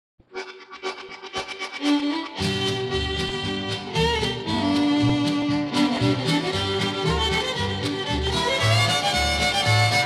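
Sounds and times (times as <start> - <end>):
country string-band music: 1.8 - 10.0.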